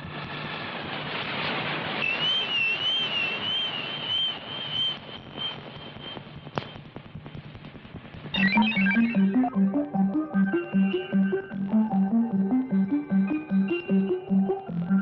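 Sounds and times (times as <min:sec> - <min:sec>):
high warbling electronic tone: 0:08.4 - 0:15.0
synthesizer music with pulsing bass: 0:08.4 - 0:15.0.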